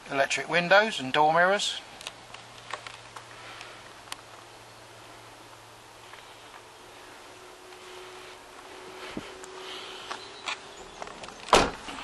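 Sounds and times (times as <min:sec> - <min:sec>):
van door shutting thump: 0:11.5 - 0:12.0.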